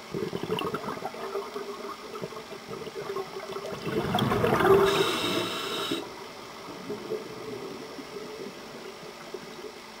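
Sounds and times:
underwater drone with low hum: 0:00.0 - 0:10.0.

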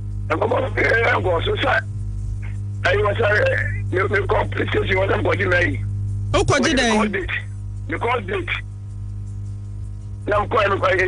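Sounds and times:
steady low hum: 0:00.0 - 0:11.0
voice over telephone line: 0:00.3 - 0:01.8, 0:02.8 - 0:05.8, 0:06.4 - 0:08.6, 0:10.3 - 0:11.0.

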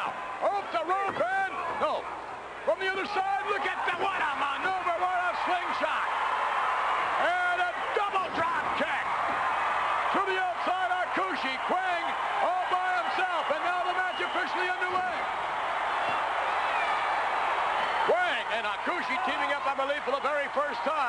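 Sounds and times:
steady background noise: 0:00.0 - 0:21.0.

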